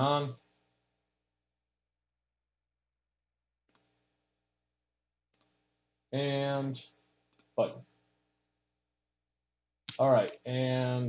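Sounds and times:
computer mouse click: 3.7s - 3.9s.

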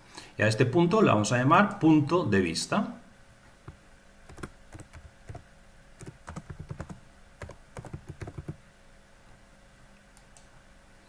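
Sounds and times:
typing on computer keyboard: 4.3s - 5.4s, 6.0s - 8.6s.

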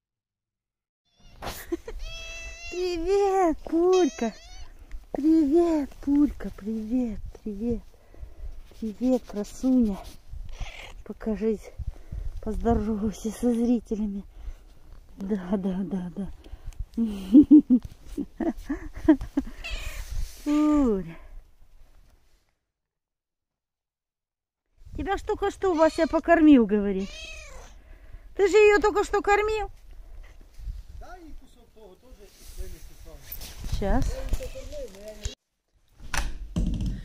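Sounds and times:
cat meowing: 1.1s - 2.8s, 3.9s - 4.8s, 10.5s - 11.0s, 19.6s - 20.0s, 27.0s - 27.8s.

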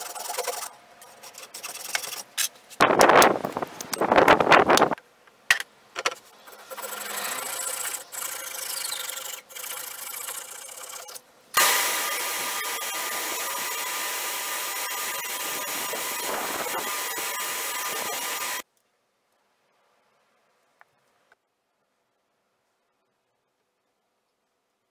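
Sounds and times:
belt sander sanding wood: 6.5s - 18.6s.

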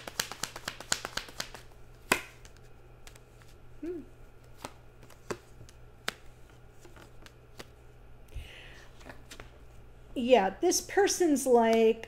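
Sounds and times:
cards being shuffled: 0.0s - 3.6s, 4.4s - 7.8s.

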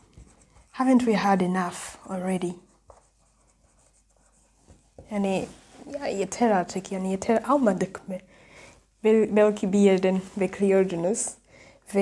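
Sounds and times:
marker scratching on whiteboard: 0.0s - 6.1s.

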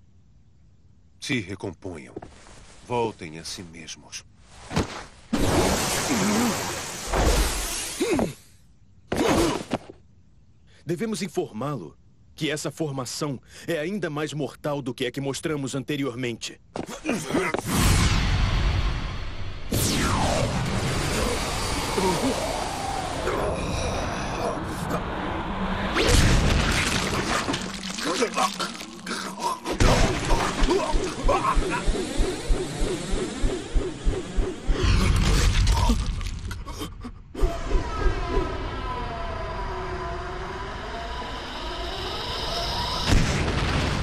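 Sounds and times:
voices: 28.0s - 32.2s
loud rushing whoosh: 31.6s - 34.8s.

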